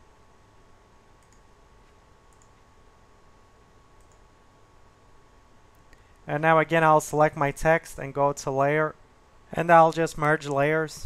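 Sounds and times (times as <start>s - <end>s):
faint computer mouse clicks: 1.2s - 1.5s, 2.3s - 2.6s, 4.0s - 4.2s.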